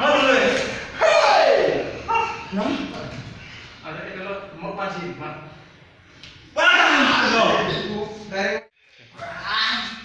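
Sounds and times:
high-pitched vocal yelps: 1.0s - 2.6s, 9.2s - 10.0s.

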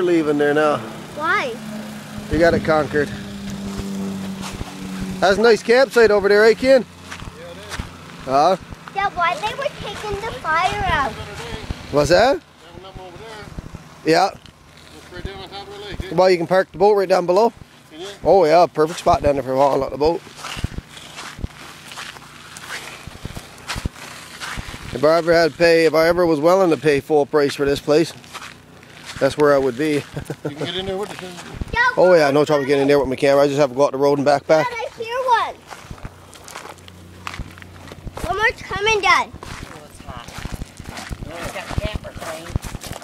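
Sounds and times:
steady engine drone: 0.0s - 43.0s
footsteps on gravelly ground: 3.4s - 16.1s, 17.4s - 32.2s, 34.6s - 43.0s.

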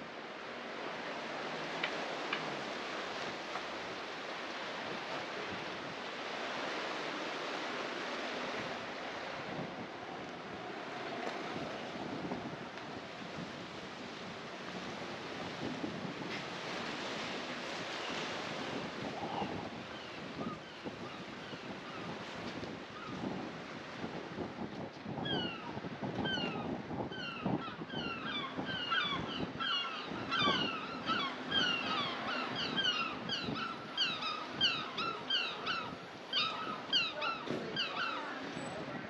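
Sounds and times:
wind: 0.0s - 39.0s.

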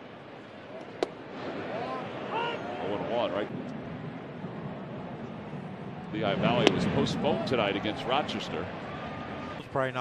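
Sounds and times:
ballpark crowd noise: 0.0s - 10.0s
ball popping into mitt: 0.9s - 1.2s.

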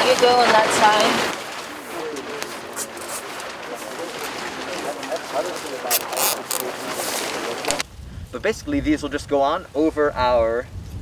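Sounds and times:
cable scratching against wire mesh: 0.0s - 7.8s
low background voices: 0.0s - 7.8s
steady rustling hiss: 0.0s - 9.7s.

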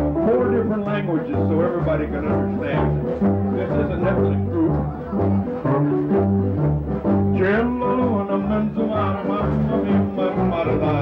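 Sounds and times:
acoustic guitar: 0.0s - 11.0s
small live band playing: 0.0s - 11.0s
stepping bass line: 0.0s - 11.0s.

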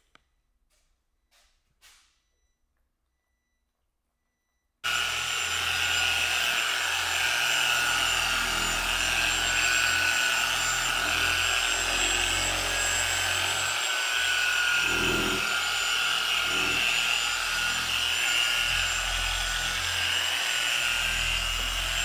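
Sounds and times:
electric car polisher whining: 4.8s - 22.0s.

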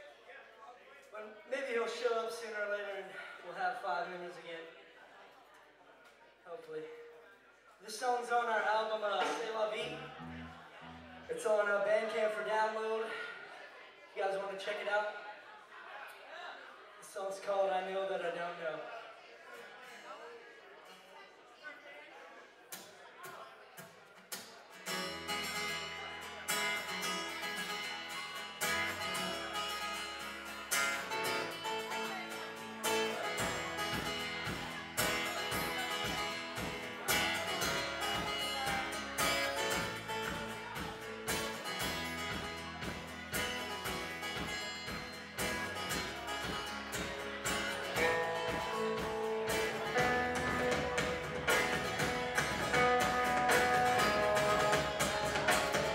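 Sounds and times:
acoustic guitar: 7.9s - 13.3s, 23.7s - 55.9s
drums playing steady beat: 32.9s - 55.9s
low bass notes: 33.4s - 55.9s.

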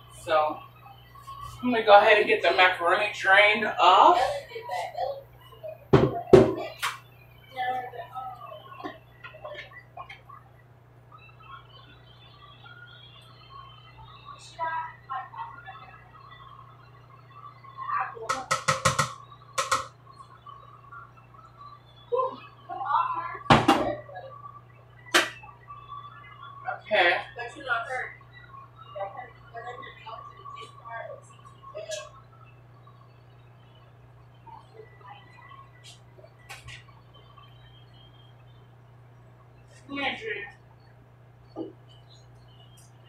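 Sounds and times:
steady low hum: 0.0s - 43.0s.

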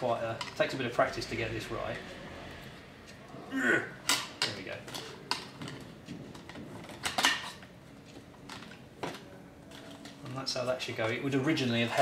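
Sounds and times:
plastic parts clicking and rattling: 4.0s - 11.2s.

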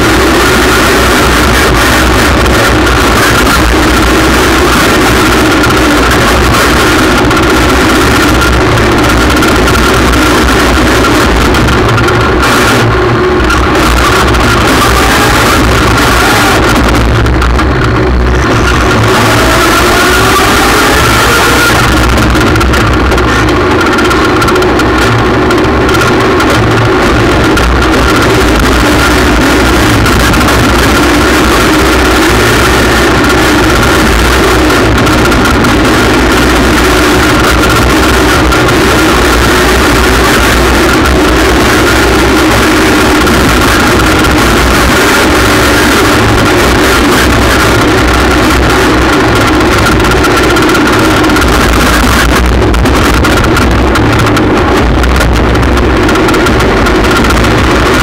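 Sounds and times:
tractor engine running under load: 0.0s - 58.0s.

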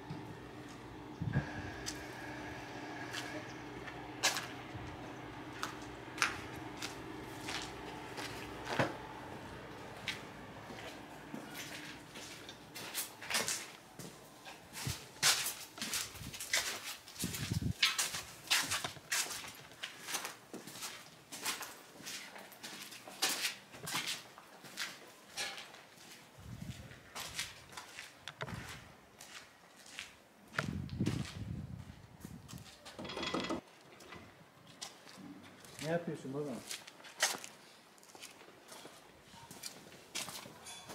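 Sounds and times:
clicks and knocks: 32.9s - 33.7s.

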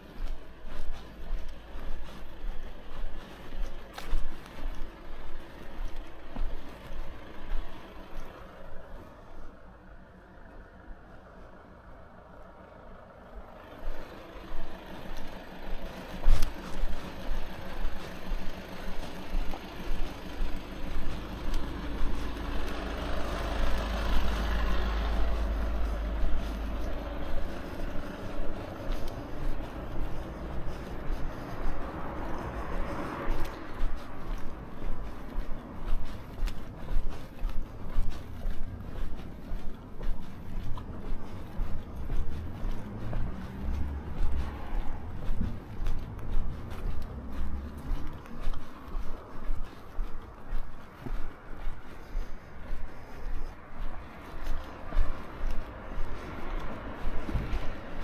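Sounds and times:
footsteps on pavement: 0.0s - 58.0s
passing vehicle: 0.0s - 58.0s.

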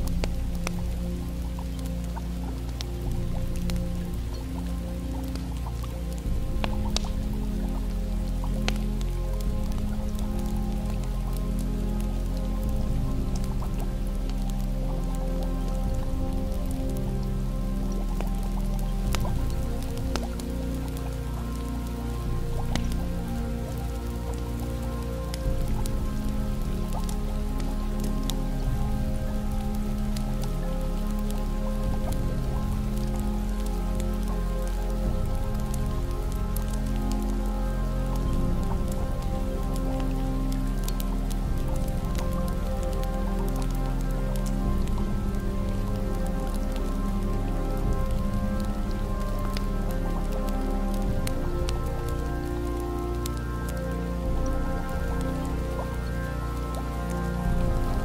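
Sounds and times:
soft ambient music: 0.0s - 58.0s
steady rain: 0.0s - 58.0s
wood fire crackling: 0.0s - 58.0s.

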